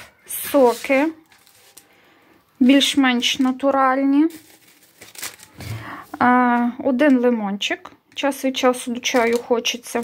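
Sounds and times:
plastic bag rustling and crinkling: 0:00.0 - 0:06.3, 0:09.0 - 0:10.0
woman speaking: 0:00.3 - 0:01.3, 0:02.6 - 0:04.4, 0:06.0 - 0:10.0.

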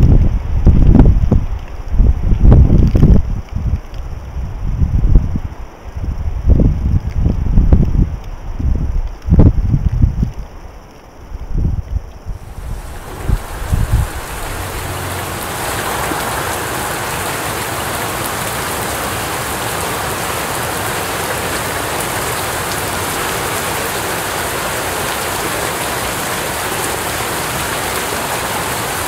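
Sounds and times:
wind buffeting microphone: 0:00.0 - 0:10.6, 0:11.3 - 0:29.0
heavy rain hissing: 0:12.3 - 0:29.0.

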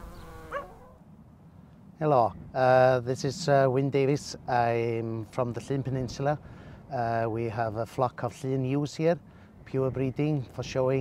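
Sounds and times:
animal cry rising in pitch: 0:00.0 - 0:01.0.

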